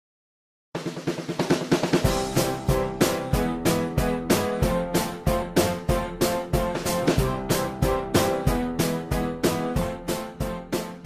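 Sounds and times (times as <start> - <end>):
snare drum roll: 0.8 - 11.0
upbeat music track: 1.4 - 11.0.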